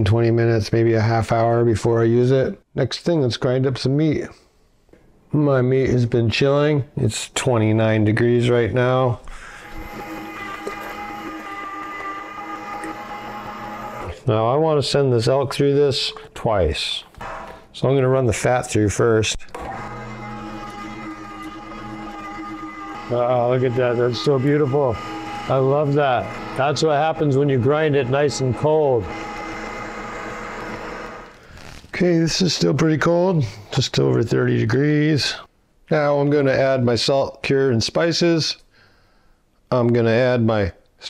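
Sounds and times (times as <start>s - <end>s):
electric meat grinder motor whine: 9.4s - 14.2s, 17.2s - 17.6s, 19.6s - 31.4s.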